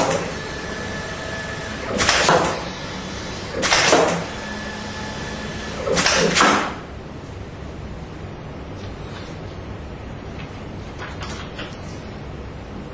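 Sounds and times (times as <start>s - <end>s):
faint motor whine: 0.0s - 10.9s.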